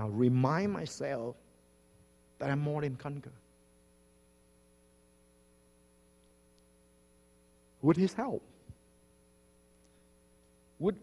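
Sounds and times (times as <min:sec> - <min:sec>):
faint electrical hum: 0:00.0 - 0:11.0
man speaking: 0:02.4 - 0:03.4, 0:07.8 - 0:08.6, 0:10.8 - 0:11.0.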